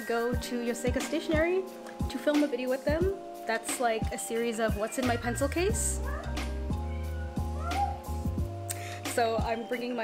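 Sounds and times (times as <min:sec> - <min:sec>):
background music with bass line: 0:00.0 - 0:10.0
cat meowing: 0:06.0 - 0:08.2.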